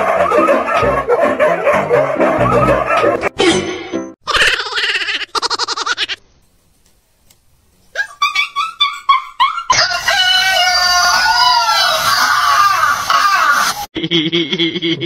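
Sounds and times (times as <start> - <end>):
rooster crowing: 9.7 - 13.6.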